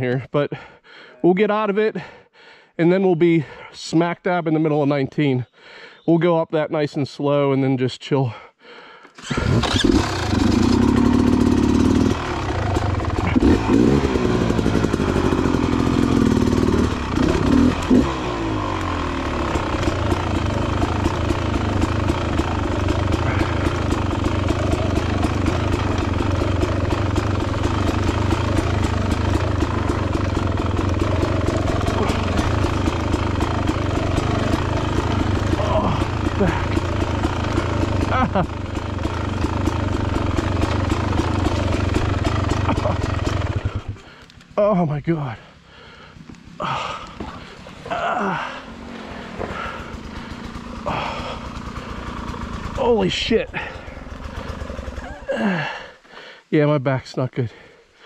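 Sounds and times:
dirt bike engine revving: 9.2s - 56.0s.

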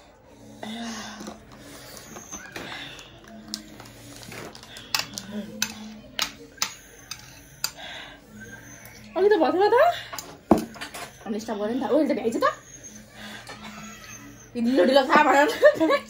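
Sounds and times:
breathy noise: 0.0s - 9.0s.

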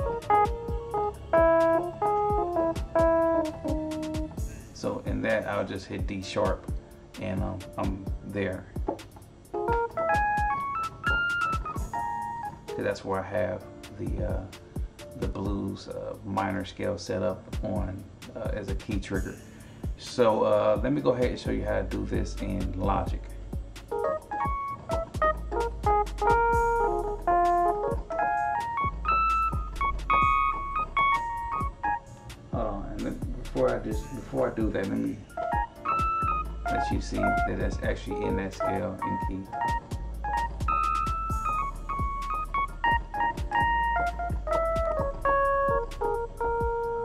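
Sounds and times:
electric piano notes: 0.0s - 4.4s, 8.9s - 15.4s, 23.8s - 47.0s
trap beat with kicks and hi-hats: 0.0s - 4.8s, 20.8s - 47.0s.

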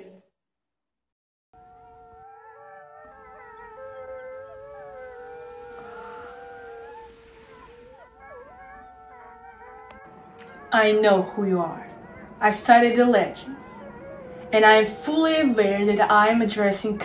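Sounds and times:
wolves howling: 1.6s - 17.0s.

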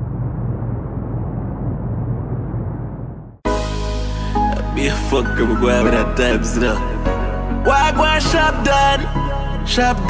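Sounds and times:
deep muffled rumble: 0.0s - 3.4s.

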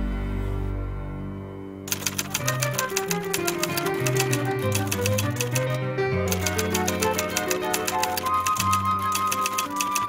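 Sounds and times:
background music: 0.0s - 10.0s
typewriter keys clacking: 1.9s - 10.0s.

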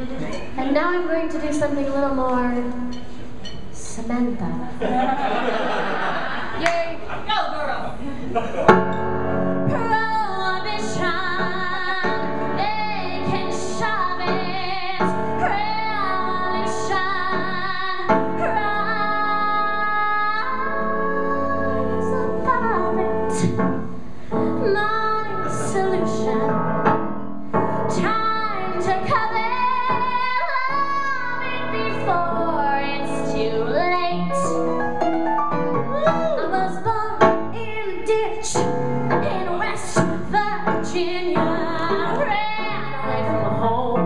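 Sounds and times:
woman singing: 0.6s - 3.0s, 3.8s - 4.8s, 9.6s - 26.9s, 27.9s - 34.6s, 35.9s - 44.0s
small jazz band playing: 8.6s - 44.0s.

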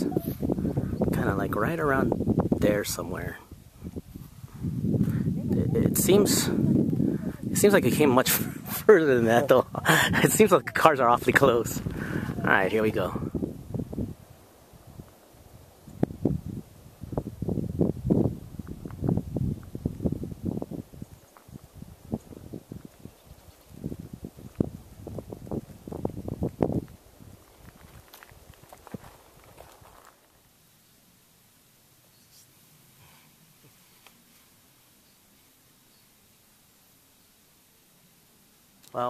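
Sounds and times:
footsteps on a dirt trail: 18.2s - 30.4s.

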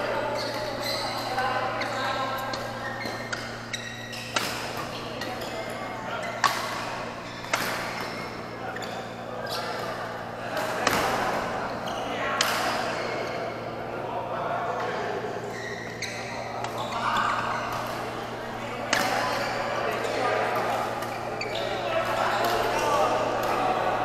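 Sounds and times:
badminton racket hitting shuttlecock: 0.4s - 3.5s, 4.1s - 5.4s, 6.4s - 8.0s, 18.8s - 19.6s.

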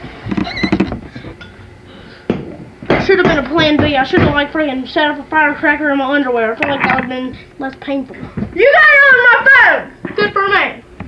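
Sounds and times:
low background hum: 0.0s - 11.0s
person speaking: 4.7s - 8.2s.

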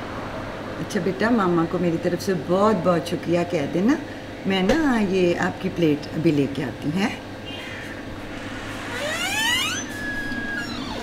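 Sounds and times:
low room hum: 0.0s - 11.0s
door hinge creaking: 7.5s - 11.0s.

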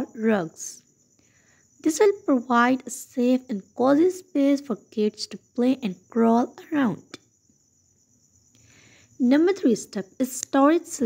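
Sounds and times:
faint high-pitched hiss: 0.0s - 11.0s
soft breath of noise: 1.1s - 1.8s, 8.6s - 9.2s.

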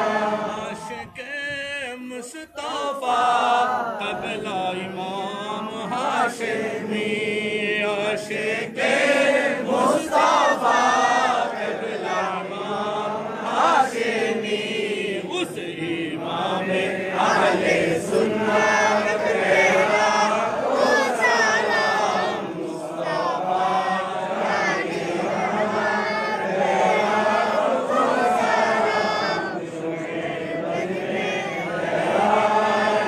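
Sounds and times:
men chanting devotional song: 0.0s - 33.0s.

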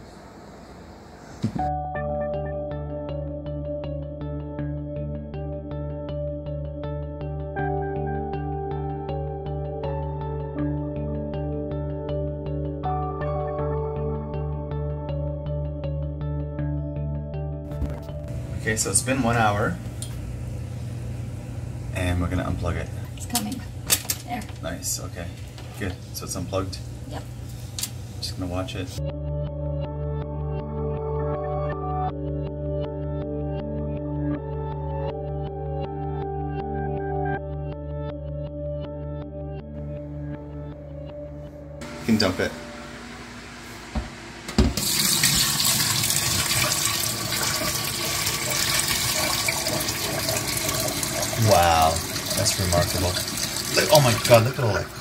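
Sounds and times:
liquid boiling with low rumble: 17.8s - 23.8s, 41.9s - 55.0s.

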